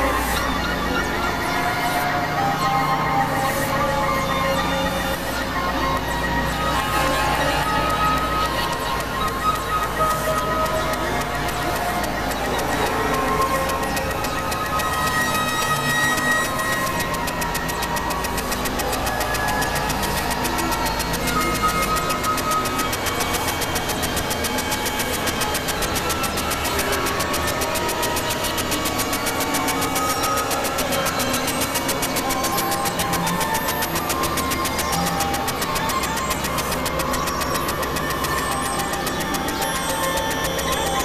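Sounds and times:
electronic noise music: 0:00.0 - 0:41.0.

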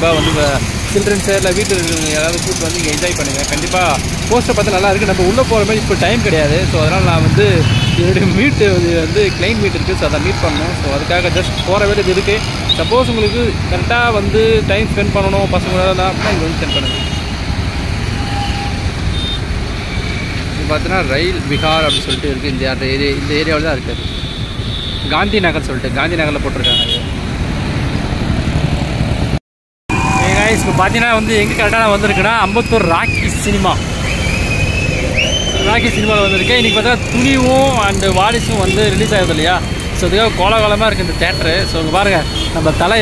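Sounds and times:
man talking: 0:00.0 - 0:17.0, 0:20.6 - 0:24.0, 0:25.1 - 0:26.8, 0:30.1 - 0:33.8, 0:35.5 - 0:43.0
road traffic rumble: 0:00.0 - 0:43.0.

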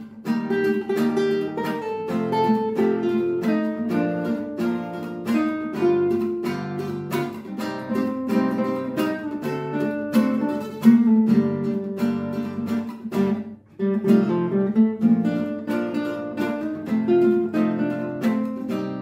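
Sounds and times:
fingerpicked guitar melody: 0:00.0 - 0:19.0
guitar strumming chords: 0:00.0 - 0:19.0.

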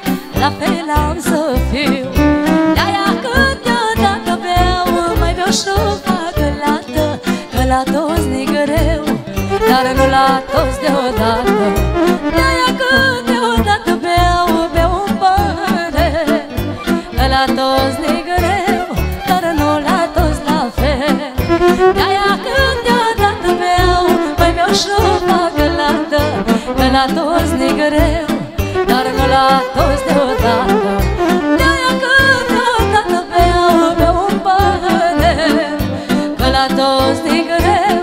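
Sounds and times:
violin melody: 0:00.0 - 0:38.0
woman singing: 0:00.0 - 0:38.0
saxophone melody: 0:02.1 - 0:04.0, 0:09.4 - 0:13.6, 0:16.5 - 0:20.2, 0:21.4 - 0:23.0, 0:23.8 - 0:34.2
bass and drums beat: 0:04.0 - 0:12.7, 0:13.6 - 0:22.2, 0:26.2 - 0:35.5.

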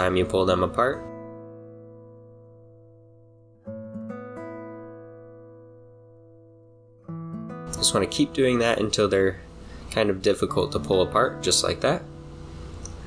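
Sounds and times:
acoustic guitar strums: 0:00.0 - 0:13.0.

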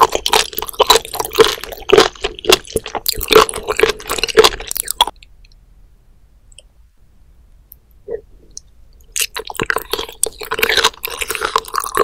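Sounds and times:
wet squishy chewing: 0:00.0 - 0:05.2, 0:09.1 - 0:12.0.

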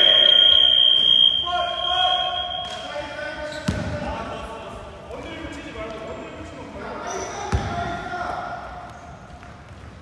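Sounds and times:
players' voices: 0:00.0 - 0:09.2
basketball thud: 0:03.6 - 0:04.0.

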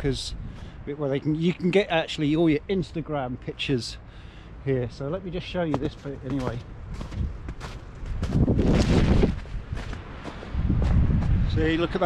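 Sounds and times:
wind rumble on microphone: 0:00.0 - 0:01.0, 0:05.8 - 0:12.0
footsteps on snow: 0:05.6 - 0:11.5
branches rustling against jacket: 0:05.7 - 0:11.4.

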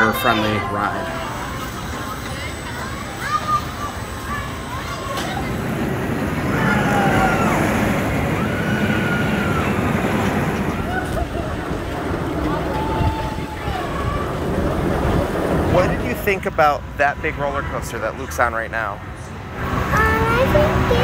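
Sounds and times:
roller coaster rumbling on track: 0:00.0 - 0:21.0
riders screaming: 0:06.4 - 0:15.7.

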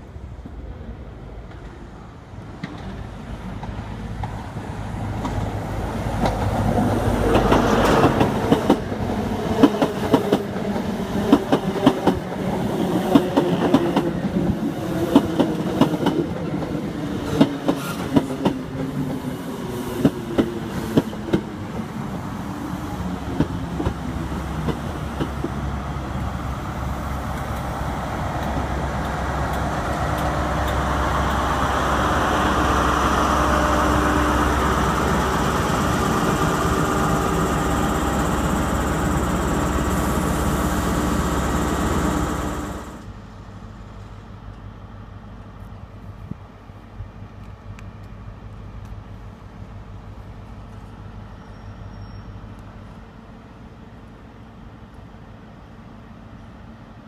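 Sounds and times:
diesel locomotive hum: 0:00.0 - 0:57.0.

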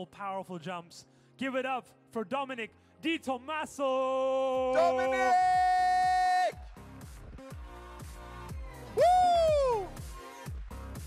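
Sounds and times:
man shouting over a pa: 0:04.2 - 0:06.6
electronic music with steady beat: 0:04.8 - 0:11.0.

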